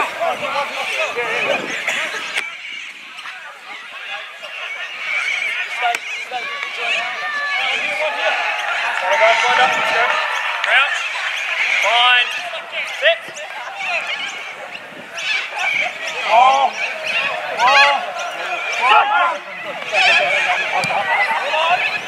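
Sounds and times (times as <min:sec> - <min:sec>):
players shouting: 0:00.0 - 0:22.0.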